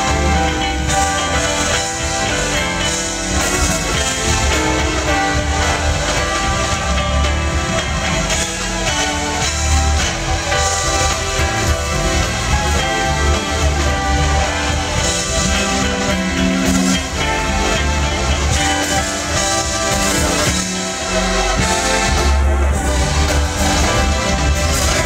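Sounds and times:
funk band playing: 0.0 - 25.0
strong bass guitar notes: 0.0 - 25.0.

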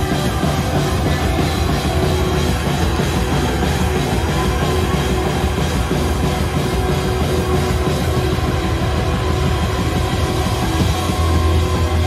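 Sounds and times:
loud heavy rock band: 0.0 - 12.0.

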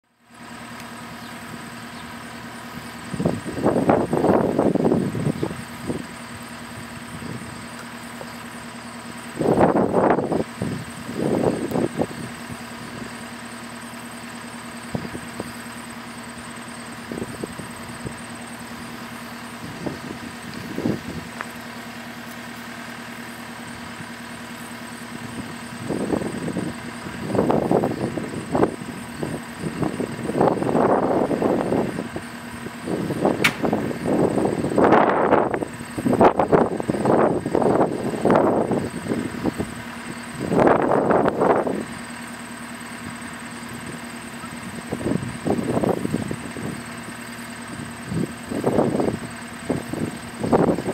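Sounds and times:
diesel engine idling: 0.0 - 50.9.

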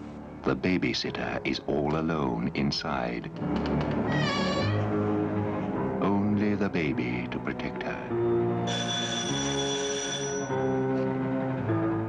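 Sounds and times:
high wavering cry: 4.1 - 4.9.

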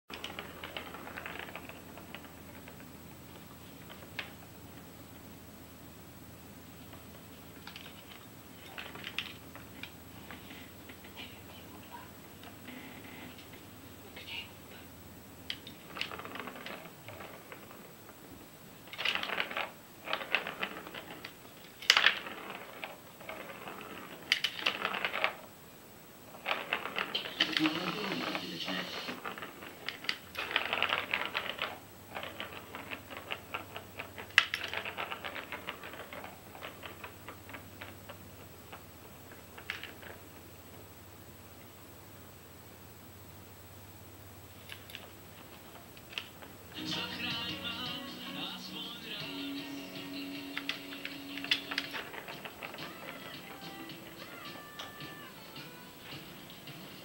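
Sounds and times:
ball clicking in plastic track: 0.1 - 4.8, 6.9 - 11.0, 15.5 - 18.2, 18.8 - 25.5, 26.3 - 40.8, 44.6 - 56.2.

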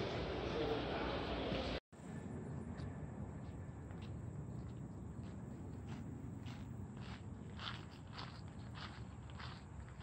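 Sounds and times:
footsteps on gravel: 3.4 - 10.0.

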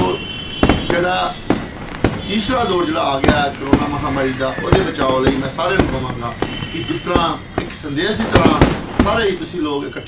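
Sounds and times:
sharp cracks: 0.0 - 9.8
man's voice: 2.3 - 10.0.

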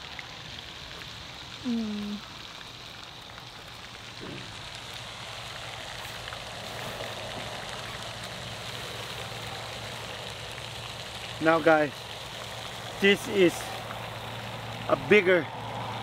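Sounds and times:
steady outdoor background hiss: 0.0 - 16.0.

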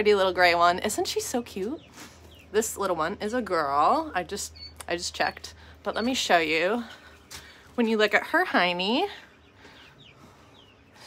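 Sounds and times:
quail peeping: 0.8 - 11.0.

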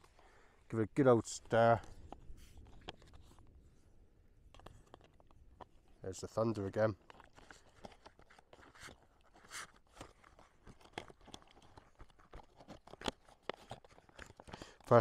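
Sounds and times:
foil pouch crinkling: 4.6 - 15.0.

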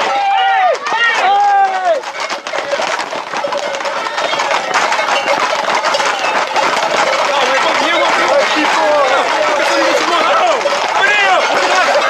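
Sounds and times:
men shouting: 0.0 - 2.2, 4.0 - 12.0
hooves clattering on asphalt: 0.0 - 12.0
running footsteps: 0.0 - 12.0.

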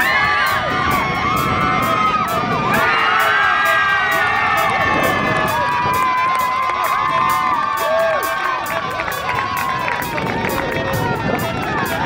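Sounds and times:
background music with steady beat: 0.0 - 12.0
crowd cheering and shouting: 0.0 - 12.0
long held shout: 0.0 - 12.0.

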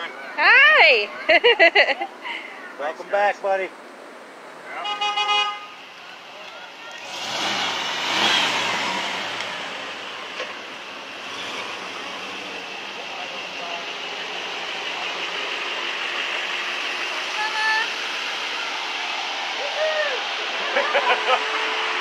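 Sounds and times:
passing traffic: 0.0 - 22.0
pickup truck passing: 0.4 - 22.0
car horn toot: 4.8 - 5.8.

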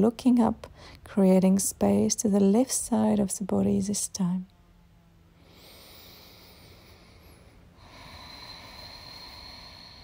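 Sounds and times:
faint slow breathing: 0.7 - 1.1, 5.3 - 10.0.

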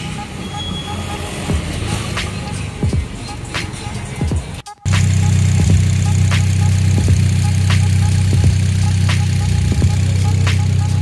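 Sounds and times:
vehicle engine idling: 1.1 - 11.0.

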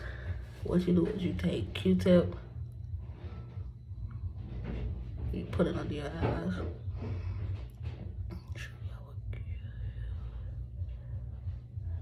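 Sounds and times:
steady low hum: 0.0 - 12.0
person whispering: 8.3 - 9.9.

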